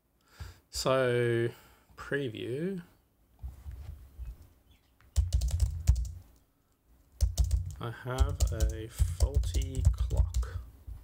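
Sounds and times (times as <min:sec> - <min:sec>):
computer keyboard typing: 0:05.2 - 0:06.2, 0:07.2 - 0:10.6.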